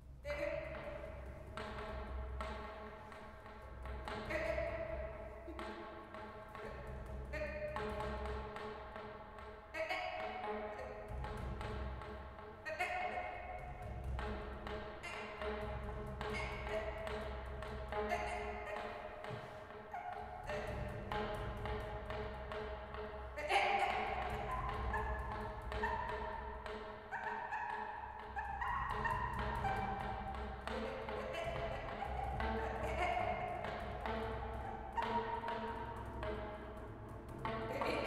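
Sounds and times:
wordless voice: 0:30.7 - 0:33.8, 0:37.7 - 0:38.0.

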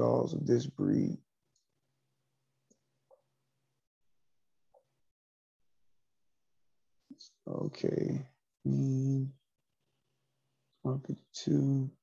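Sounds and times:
man's voice: 0:00.0 - 0:01.2, 0:07.2 - 0:09.3, 0:10.9 - 0:12.0
faint low hum: 0:07.1 - 0:09.3.

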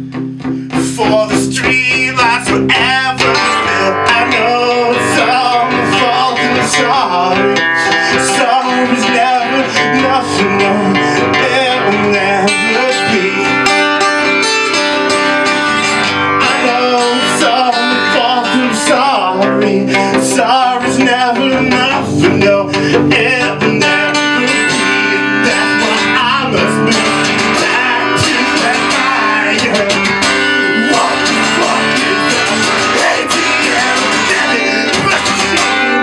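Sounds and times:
man singing: 0:00.0 - 0:14.8, 0:16.3 - 0:36.0
acoustic guitar strummed: 0:00.0 - 0:36.0.

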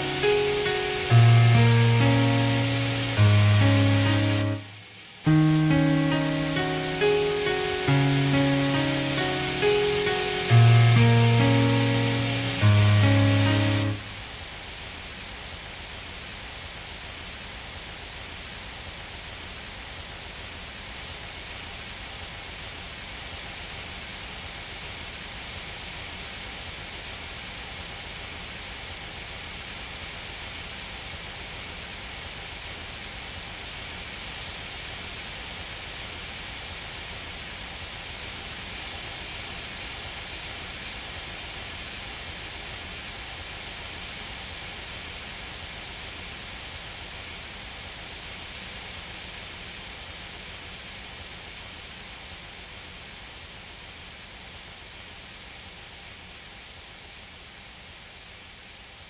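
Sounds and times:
faint held tones: 0:00.0 - 0:14.2
hiss-like noise wash: 0:00.0 - 0:59.0.

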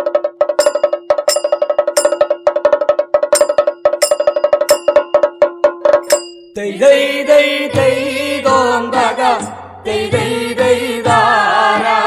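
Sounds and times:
pitched drum strokes: 0:00.0 - 0:12.0
bright metallic clink: 0:00.6 - 0:02.5, 0:03.4 - 0:06.6.

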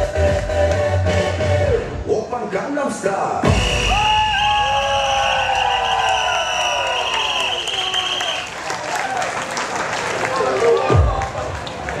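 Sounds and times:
dance music: 0:00.0 - 0:05.0, 0:10.3 - 0:11.6
audience clapping and cheering: 0:04.0 - 0:12.0.

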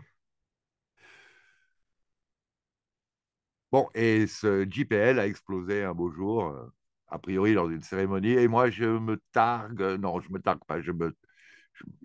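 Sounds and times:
man breathing: 0:01.0 - 0:01.8, 0:11.3 - 0:11.8.

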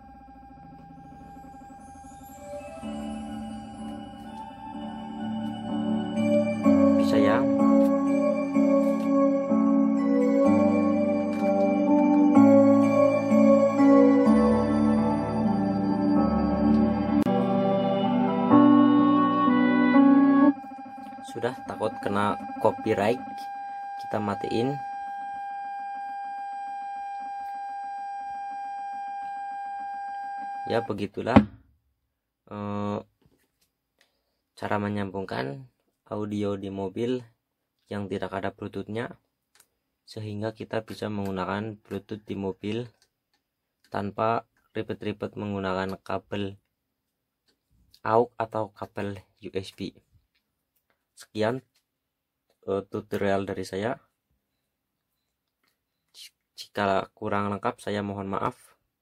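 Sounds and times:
song from car stereo speakers: 0:00.0 - 0:24.8
steady electronic beep: 0:00.0 - 0:26.8.

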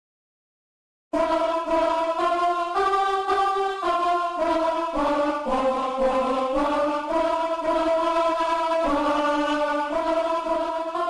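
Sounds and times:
sampled ahh choir voices: 0:01.2 - 0:11.0.

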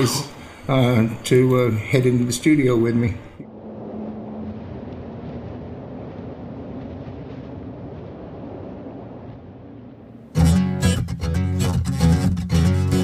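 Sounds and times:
wind-like rumbling drone: 0:00.0 - 0:10.4.

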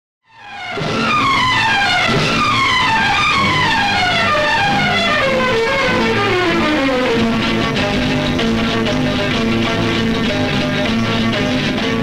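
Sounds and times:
background film music: 0:00.3 - 0:12.0.

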